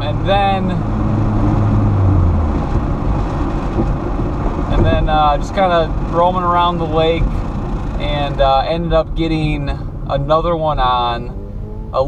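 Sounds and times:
road and wind noise in car: 0.0 - 12.0
vibrating strap humming: 11.1 - 12.0.

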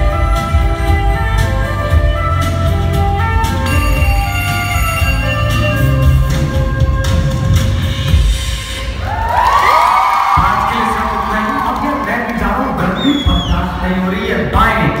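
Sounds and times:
dance music over loudspeakers: 0.0 - 15.0
audience screaming and cheering: 8.8 - 13.9.

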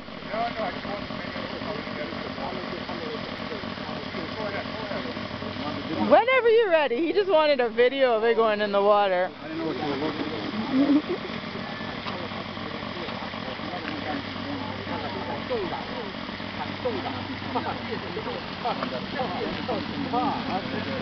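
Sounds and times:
indistinct chatter: 0.0 - 21.0
steady low hum: 0.0 - 21.0.

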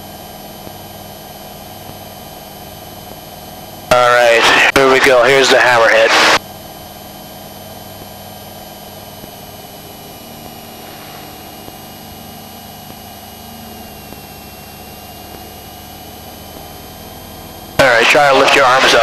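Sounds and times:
small aircraft engine drone: 0.0 - 19.0
thin electrical whine: 0.6 - 19.0.

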